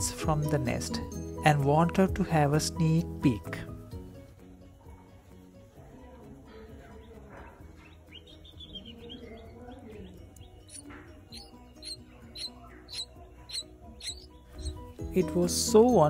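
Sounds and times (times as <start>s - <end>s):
quiet background music: 0.0s - 16.0s
nestlings begging tweets: 6.8s - 16.0s.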